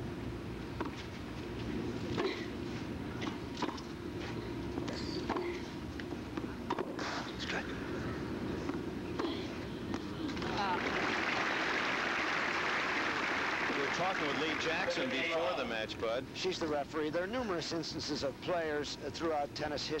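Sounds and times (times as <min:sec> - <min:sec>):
crowd applauding: 0:10.5 - 0:15.4.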